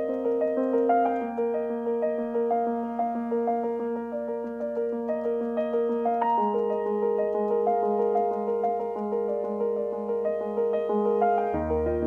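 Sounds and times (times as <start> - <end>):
gentle piano melody: 0.0 - 12.0.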